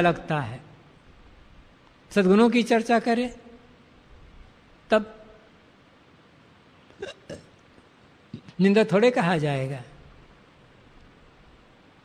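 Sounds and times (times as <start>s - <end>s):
room hiss: 0.0s - 12.0s
man talking: 2.1s - 3.4s, 4.9s - 5.2s, 8.4s - 10.0s.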